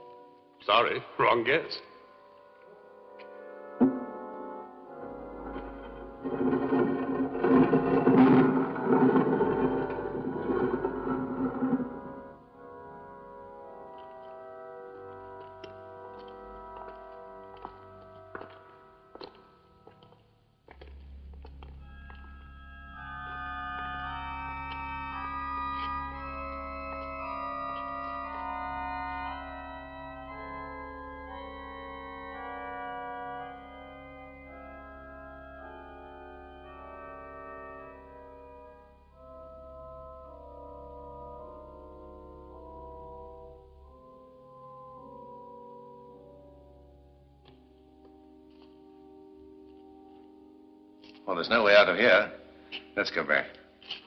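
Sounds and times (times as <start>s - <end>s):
organ chords: 2.9s - 20.1s, 20.8s - 53.5s
low sustained drone: 4.3s - 17.4s.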